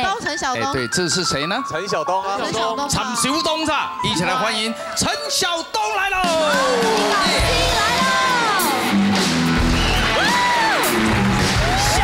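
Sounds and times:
audience whooping: 6.2s - 12.0s
pop music with heavy beat: 6.2s - 12.0s.

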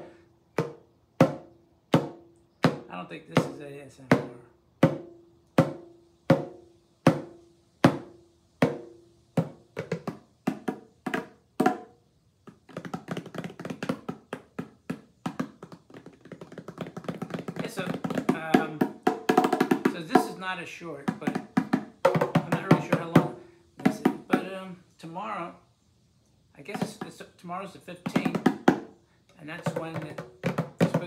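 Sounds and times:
bongo drums played by hand: 0.0s - 24.6s, 26.7s - 27.4s, 28.0s - 31.0s.

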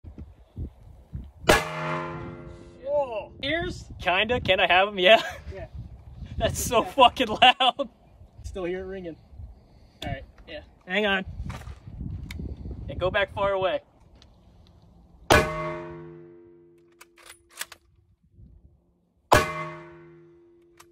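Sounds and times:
pitched ringing: 1.5s - 2.8s, 19.3s - 20.8s
rifle bolt metallic clicks: 16.8s - 17.9s.

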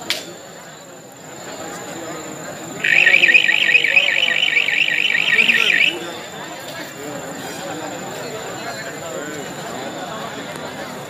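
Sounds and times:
crowd voices: 0.0s - 11.0s
electronic warbling siren: 2.8s - 6.1s.

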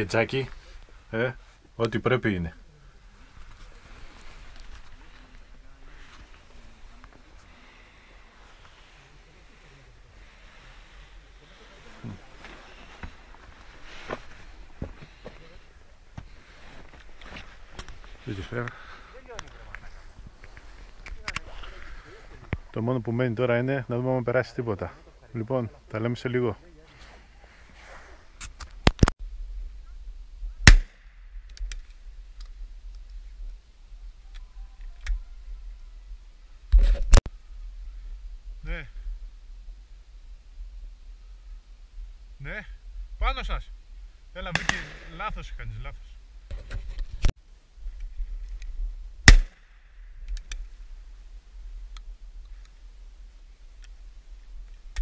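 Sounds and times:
shotgun shot: 30.7s - 31.1s, 44.5s - 45.2s, 49.2s - 49.8s.

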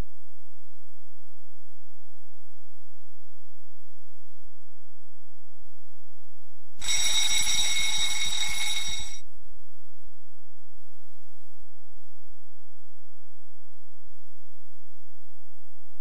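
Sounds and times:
bell rung rapidly: 6.8s - 9.2s.

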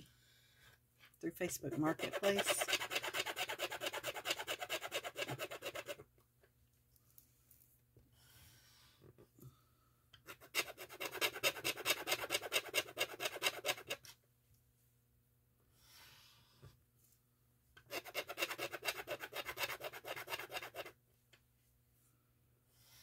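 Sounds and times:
plastic tool scratching ink pad: 1.8s - 6.0s, 17.9s - 20.9s.

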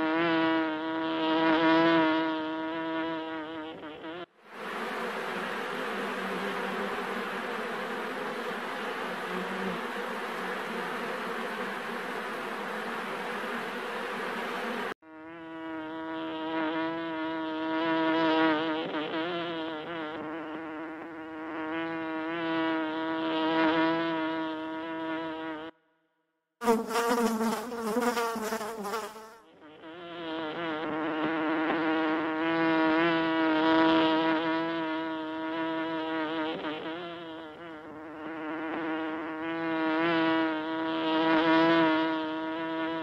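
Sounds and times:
honey bees buzzing: 0.0s - 25.7s, 26.6s - 43.0s.

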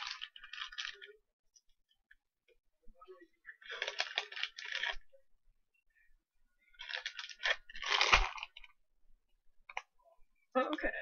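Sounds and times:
plastic bag crackling: 0.0s - 1.1s, 3.6s - 5.0s, 6.8s - 8.7s.

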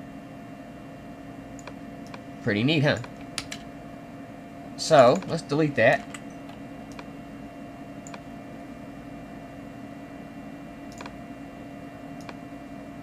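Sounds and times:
steady background hum: 0.0s - 13.0s
computer keyboard or mouse clicks: 1.6s - 2.2s, 6.0s - 7.1s, 8.0s - 8.2s, 10.9s - 11.2s, 12.2s - 12.4s.

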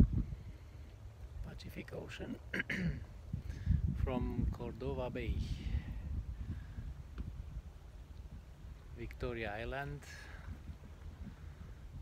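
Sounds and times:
wind on microphone: 0.0s - 1.6s, 3.1s - 12.0s.

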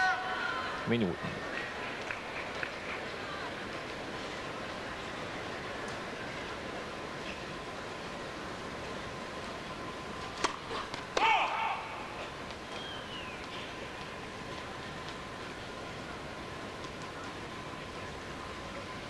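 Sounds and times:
indoor arena crowd hum: 0.0s - 19.0s
short shouted call: 11.2s - 12.2s.

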